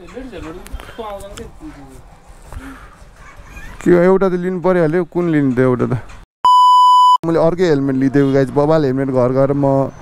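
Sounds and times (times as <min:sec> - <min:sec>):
high test-tone beep: 0:06.5 - 0:07.2.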